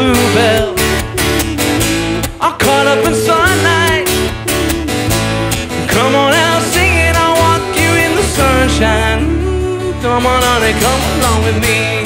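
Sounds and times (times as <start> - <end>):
acoustic guitar strumming: 0.0 - 12.0
low bass notes: 0.0 - 12.0.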